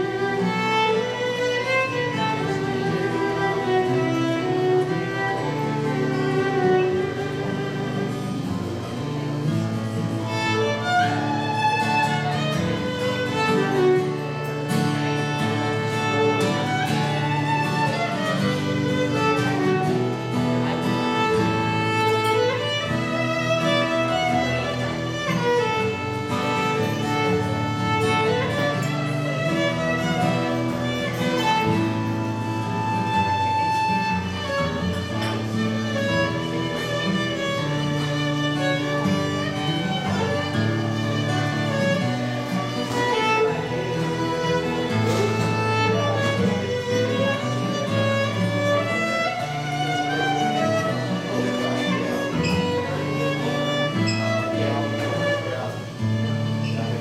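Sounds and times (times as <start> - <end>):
acoustic guitar chords: 0.0 - 57.0
bowed viola melody: 0.0 - 57.0.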